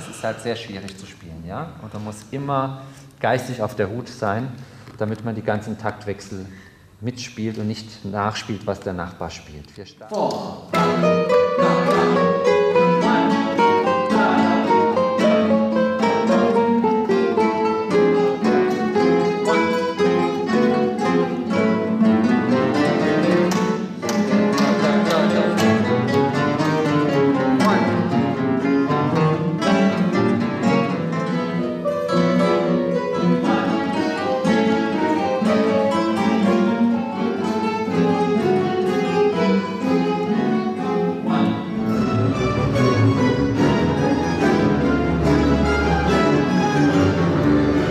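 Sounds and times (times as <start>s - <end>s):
guitars and mandolins playing: 10.6s - 47.9s.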